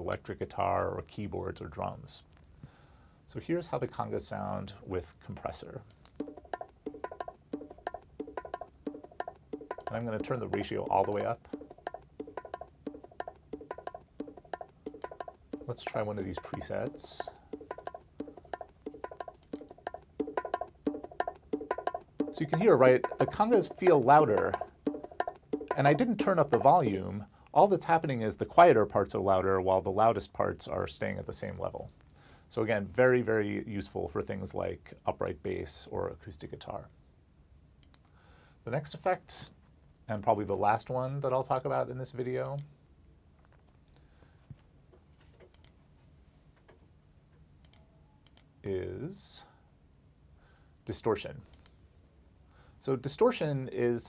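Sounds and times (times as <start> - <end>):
conga drum loop: 6.2 - 27.1
computer mouse clicks: 45.1 - 45.8, 47.6 - 48.5.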